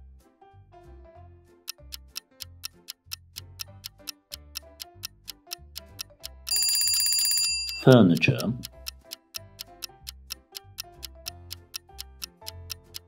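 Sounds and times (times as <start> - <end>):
light children's music: 0.0 - 13.0
countdown clock ticking: 1.7 - 13.0
electronic ringing alarm: 6.5 - 8.5.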